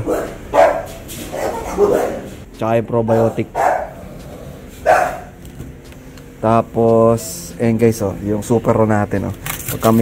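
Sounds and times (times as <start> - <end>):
dog barking: 0.0 - 2.4, 3.1 - 4.0, 4.8 - 5.3.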